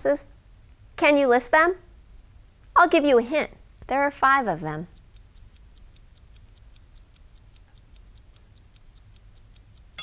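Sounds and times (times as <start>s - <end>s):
clock ticking: 4.9s - 10.0s.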